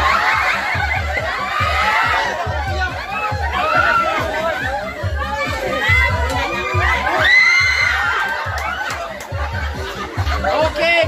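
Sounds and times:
crowd shouting and cheering: 0:00.0 - 0:11.0
dance music with thumping bass: 0:00.0 - 0:11.0.

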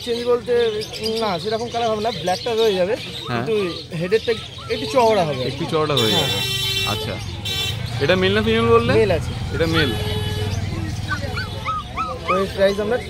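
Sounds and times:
low traffic rumble: 0:00.0 - 0:13.0
voices: 0:00.0 - 0:13.0
puppy whimpering: 0:03.2 - 0:05.6, 0:11.0 - 0:13.0.

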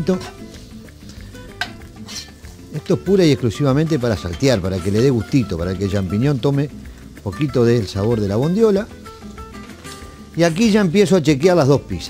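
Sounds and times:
spatula stirring: 0:00.0 - 0:07.2
food sizzling in a frying pan: 0:00.0 - 0:12.0
spatula tapping a pan: 0:00.2 - 0:02.0.

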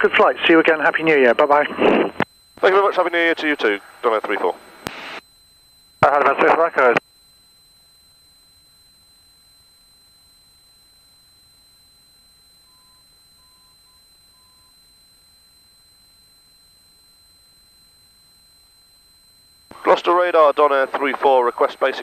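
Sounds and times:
faint steady hiss: 0:01.5 - 0:07.0.

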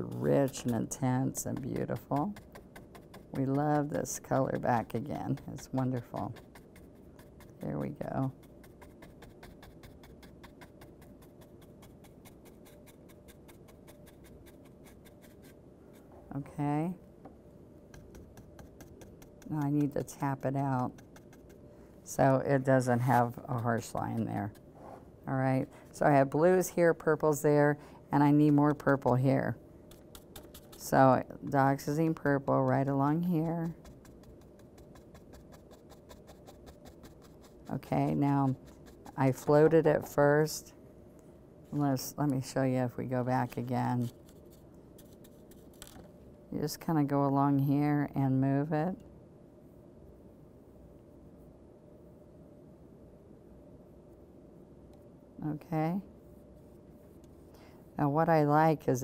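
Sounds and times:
paintbrush scratching on canvas: 0:00.0 - 0:16.2, 0:17.9 - 0:21.6, 0:22.2 - 0:25.0, 0:28.2 - 0:40.2, 0:43.4 - 0:46.0.

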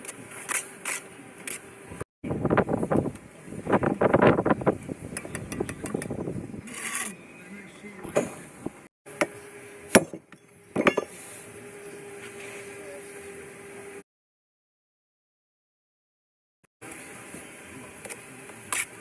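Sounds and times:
wind rumble on microphone: 0:02.2 - 0:06.8
tools knocking on brick: 0:09.9 - 0:11.1.

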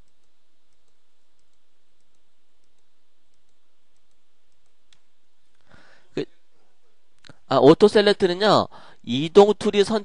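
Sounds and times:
computer mouse click: 0:00.0 - 0:05.1
low background hiss: 0:00.0 - 0:10.0.

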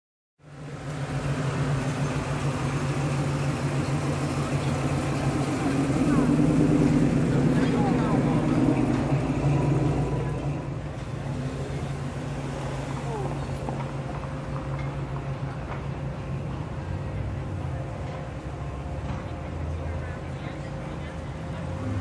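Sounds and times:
car engines rumbling in traffic: 0:00.4 - 0:22.0.

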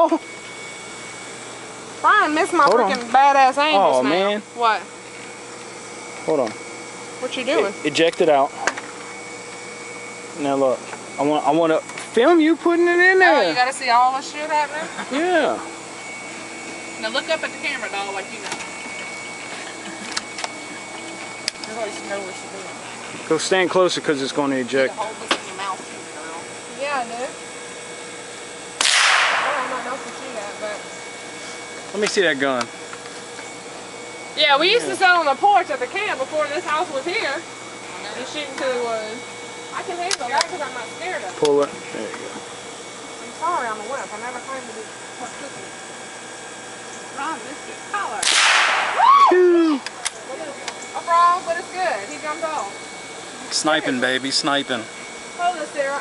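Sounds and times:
rifle shot: 0:28.8 - 0:29.8, 0:48.2 - 0:49.0
person calling out: 0:49.0 - 0:49.9.

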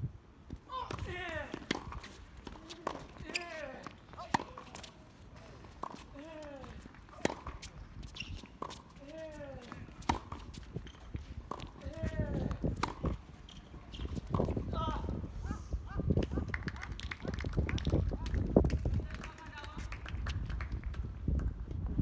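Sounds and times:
racket hitting tennis ball: 0:00.8 - 0:13.2.

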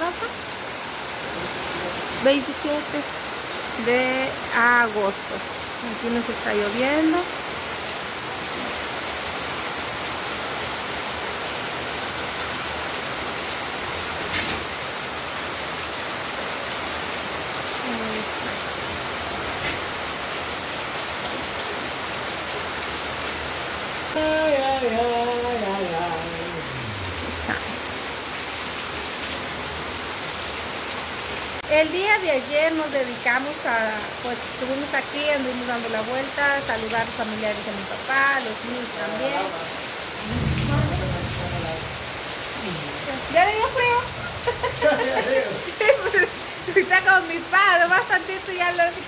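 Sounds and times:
rain on a roof: 0:00.0 - 0:49.0.

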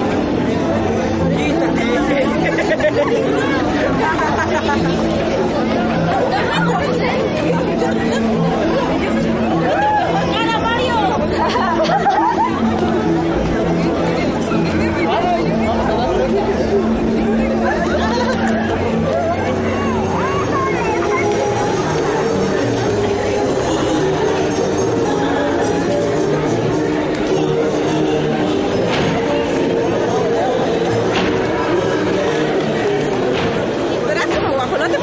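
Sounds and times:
music with held notes: 0:00.0 - 0:35.0
young people chattering: 0:00.0 - 0:35.0.

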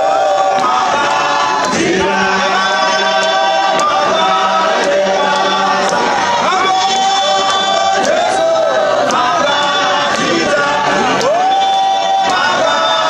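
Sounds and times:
congregation singing a hymn: 0:00.0 - 0:13.0
hand claps: 0:00.0 - 0:13.0
man singing through microphone: 0:00.0 - 0:13.0.

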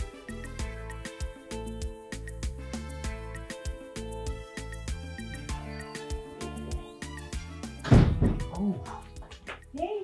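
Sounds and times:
background music: 0:00.0 - 0:10.0
loud thunk: 0:07.8 - 0:08.6.

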